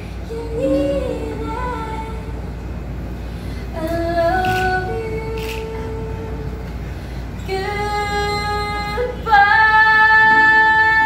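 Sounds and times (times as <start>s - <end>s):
acoustic guitar: 0.0s - 11.0s
woman singing: 0.2s - 2.4s, 3.7s - 6.6s, 7.4s - 11.0s.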